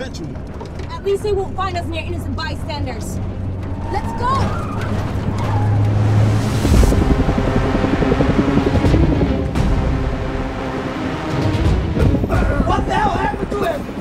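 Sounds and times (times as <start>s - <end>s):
tense action film score: 0.0s - 14.0s
vehicle engine rumble: 0.0s - 14.0s.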